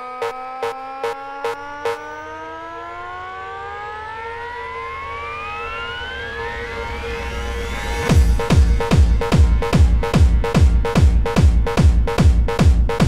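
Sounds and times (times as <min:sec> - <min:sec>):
held synth note: 0:00.0 - 0:09.3
rising synth sweep: 0:00.0 - 0:11.4
heavy kick drums: 0:08.1 - 0:13.0.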